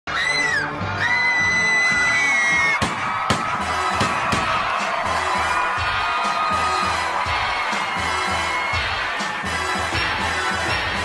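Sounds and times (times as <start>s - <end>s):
crowd screaming and cheering: 0.1s - 11.0s
live concert music: 0.1s - 11.0s
sharp percussive hits: 2.8s - 4.9s.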